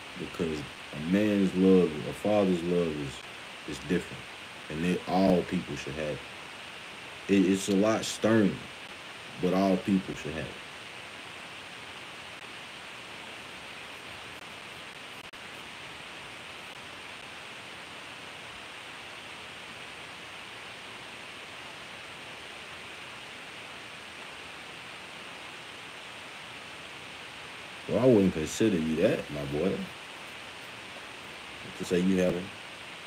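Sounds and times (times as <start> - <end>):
room noise hiss: 0.0 - 33.0.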